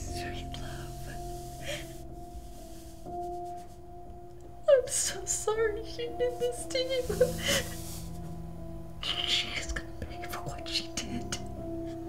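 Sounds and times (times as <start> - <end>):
low held music tone: 0.0 - 12.0.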